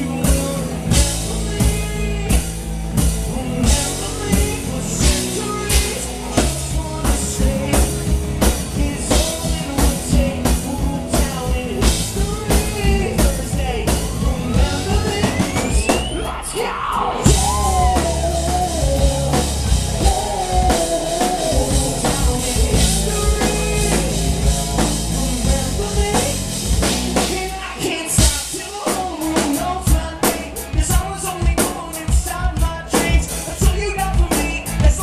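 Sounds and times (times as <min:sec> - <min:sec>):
live rock band playing: 0:00.0 - 0:35.0
person singing: 0:00.0 - 0:35.0
rising sweep: 0:14.0 - 0:25.6.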